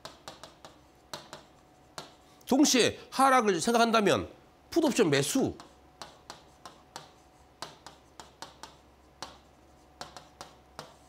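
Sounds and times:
pen ticking on touchscreen: 0.0s - 2.1s, 5.6s - 11.0s.

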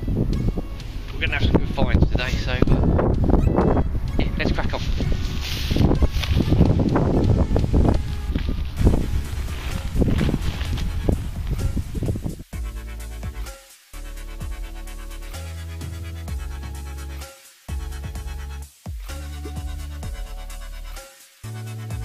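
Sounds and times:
wind on microphone: 0.0s - 12.5s
microphone handling noise: 0.2s - 12.5s
man's indistinct voice: 1.1s - 3.1s, 4.1s - 5.2s
electronic dance music: 12.4s - 22.0s.

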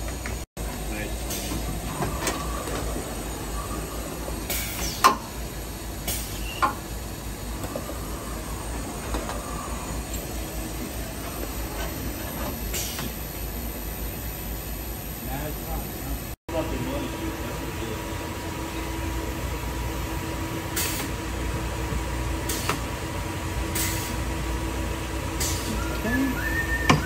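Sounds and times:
machine-shop rumble and hiss: 0.0s - 27.0s.

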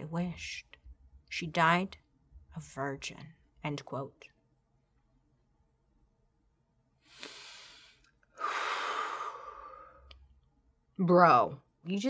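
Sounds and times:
woman breathing in: 7.0s - 10.1s.

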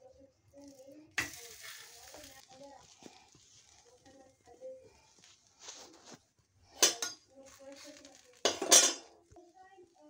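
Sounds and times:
metal kitchen utensils clattering: 6.8s - 7.3s, 8.4s - 9.2s.

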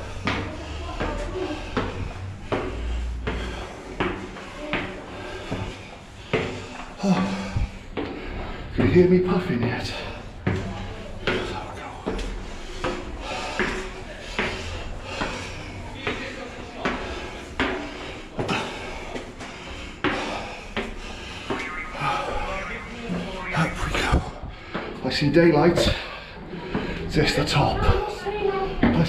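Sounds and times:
footsteps on stone steps: 0.0s - 29.0s.

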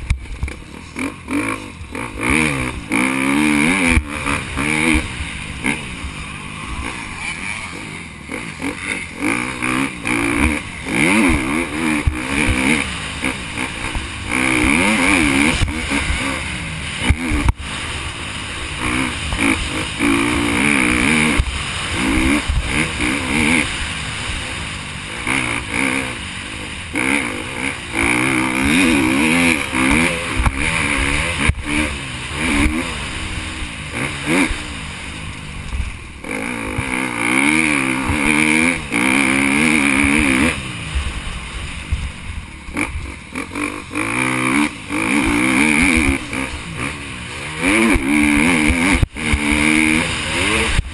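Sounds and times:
motorbike engine revving: 0.0s - 50.9s.

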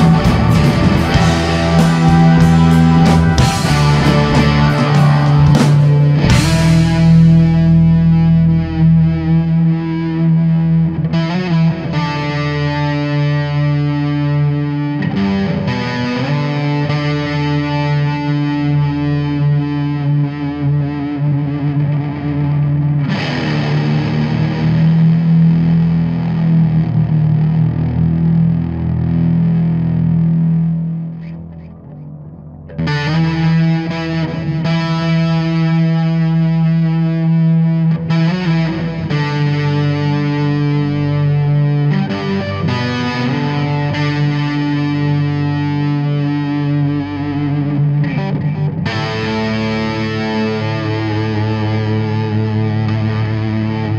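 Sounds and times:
live rock band playing: 0.0s - 9.4s
distorted electric guitar: 0.0s - 53.9s.

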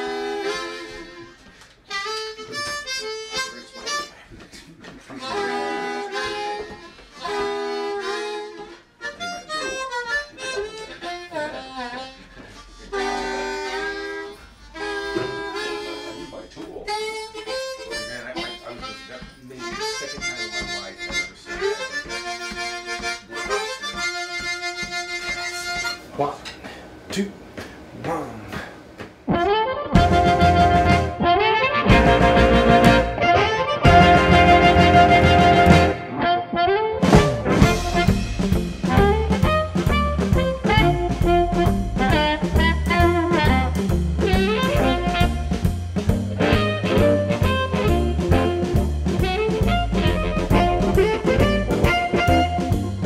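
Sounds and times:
blues harmonica playing: 0.0s - 26.2s, 29.3s - 53.0s.

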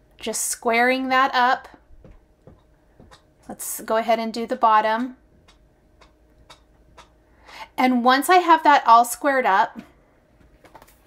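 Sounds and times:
faint ticking: 2.4s - 3.5s, 4.5s - 7.8s.

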